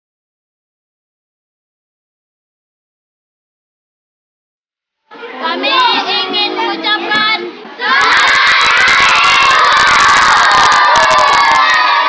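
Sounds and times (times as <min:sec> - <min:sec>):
children cheering and shouting: 0:07.8 - 0:12.0.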